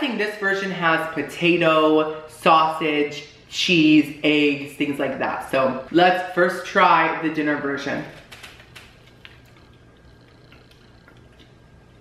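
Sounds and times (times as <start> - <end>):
low steady hum: 0.0 - 12.0
crunchy chewing: 8.2 - 12.0.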